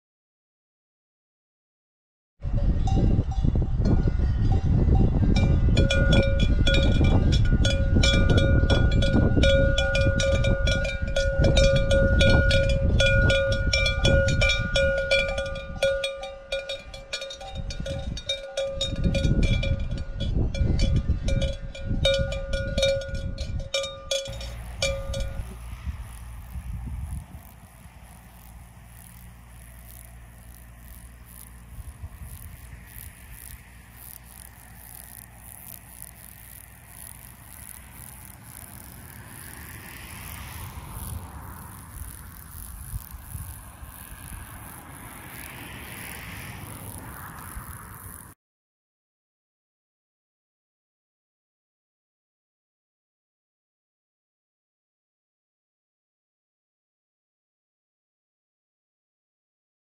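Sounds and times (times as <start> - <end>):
wind rumble on microphone: 2.4 - 48.4
cowbell clanking: 2.6 - 25.8.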